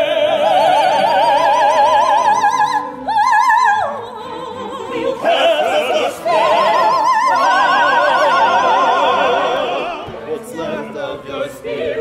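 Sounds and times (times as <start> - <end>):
opera chorus singing: 0.0 - 12.0.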